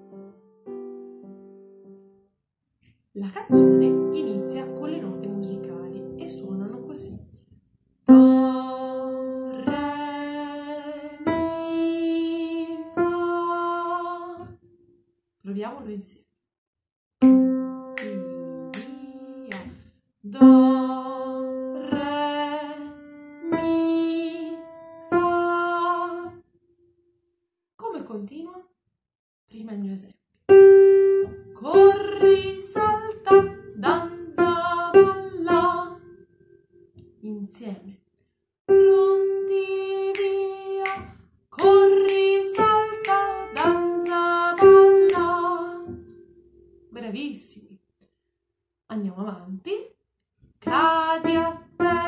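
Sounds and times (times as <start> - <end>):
woman singing scale notes: 3.2 - 7.2, 8.1 - 14.5, 17.2 - 26.3, 30.8 - 36.2, 38.7 - 46.1, 50.6 - 52.0.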